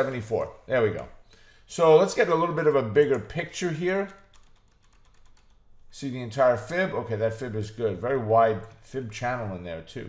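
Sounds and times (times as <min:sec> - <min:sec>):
rapid faint computer clicks: 0:02.9 - 0:06.0.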